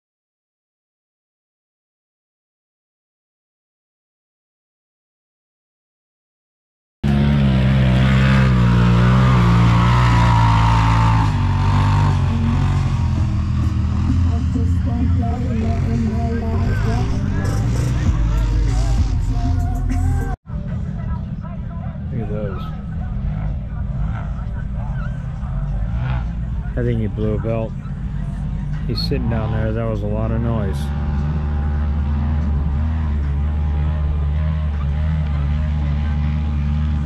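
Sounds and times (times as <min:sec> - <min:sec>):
utility vehicle engines revving: 0:07.0 - 0:37.0
voices: 0:08.6 - 0:37.0.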